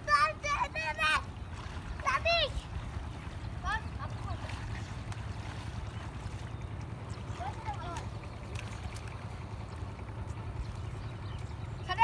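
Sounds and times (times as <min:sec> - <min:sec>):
child shouting: 0:00.0 - 0:01.3, 0:02.0 - 0:02.6.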